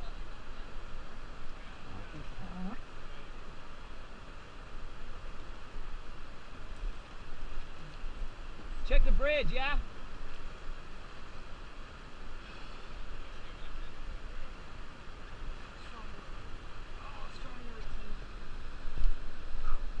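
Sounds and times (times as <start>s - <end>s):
river water rushing: 0.0s - 20.0s.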